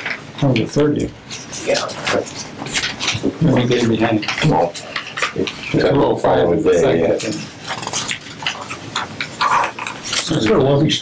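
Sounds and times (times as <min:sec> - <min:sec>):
papers being handled: 0:00.0 - 0:11.0
voices talking: 0:00.0 - 0:11.0.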